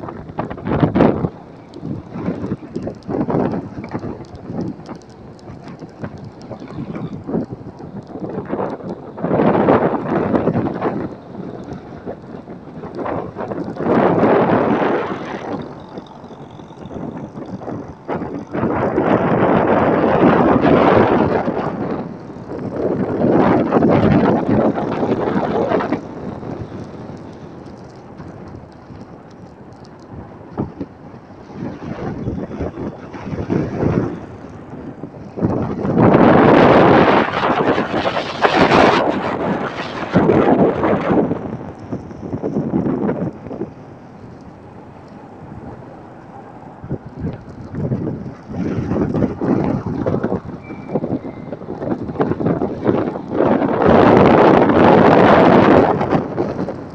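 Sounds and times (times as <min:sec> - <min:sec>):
moving vehicle road noise: 0:00.0 - 0:56.9
wind buffeting microphone: 0:00.0 - 0:56.9.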